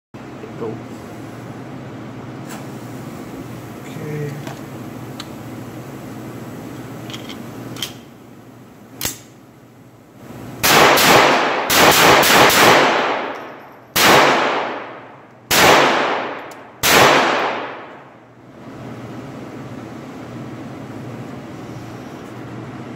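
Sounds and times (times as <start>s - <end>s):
pistol shots echoing indoors: 10.6s - 18.2s.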